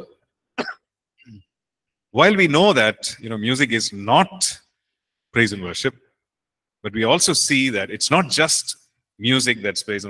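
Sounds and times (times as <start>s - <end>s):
man clearing his throat: 0.6s - 1.4s.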